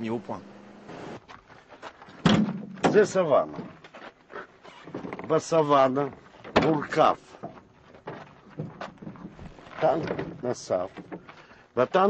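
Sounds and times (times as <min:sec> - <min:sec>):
man's voice: 0:00.0 - 0:00.5.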